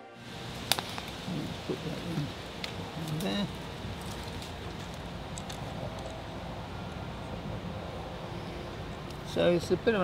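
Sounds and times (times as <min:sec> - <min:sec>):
low outdoor rumble: 0:00.2 - 0:10.0.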